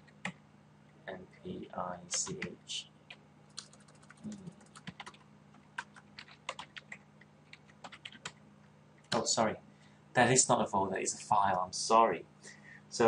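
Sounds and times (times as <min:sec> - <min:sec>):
computer keyboard typing: 0:02.1 - 0:02.5, 0:03.1 - 0:08.4.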